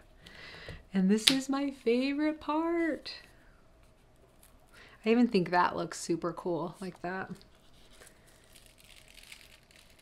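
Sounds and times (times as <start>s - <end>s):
metallic foil crinkling: 7.8s - 10.0s.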